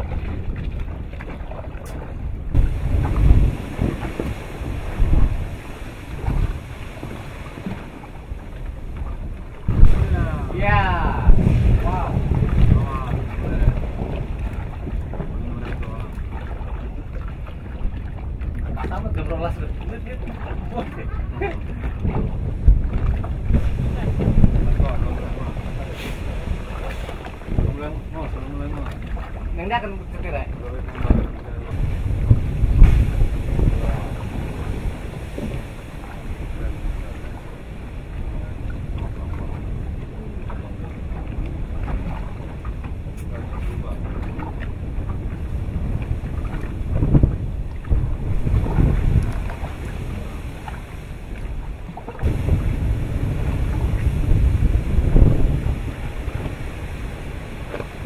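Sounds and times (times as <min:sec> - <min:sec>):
boat low rumble: 0:00.0 - 0:58.0
wind buffeting microphone: 0:00.0 - 0:58.0.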